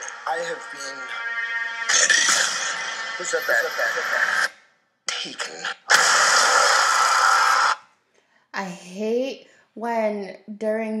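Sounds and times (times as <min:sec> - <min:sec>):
loud burst of noise: 0:00.0 - 0:04.6, 0:05.8 - 0:07.9.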